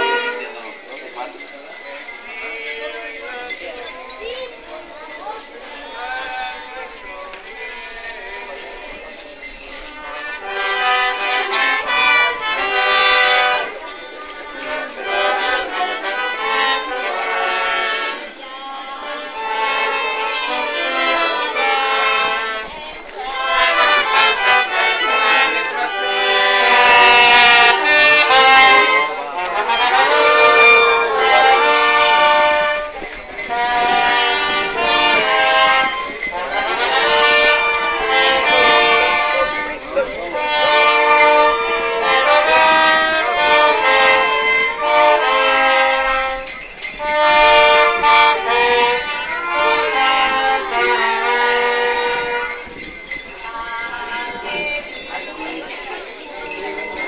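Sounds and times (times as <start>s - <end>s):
brass band holding a chord: 0.0s - 0.6s, 9.8s - 52.8s.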